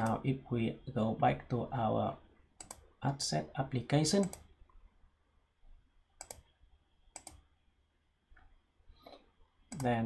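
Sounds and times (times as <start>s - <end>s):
computer mouse clicks: 2.6s - 2.9s, 4.2s - 4.5s, 6.2s - 6.5s, 7.1s - 7.4s, 9.7s - 10.0s.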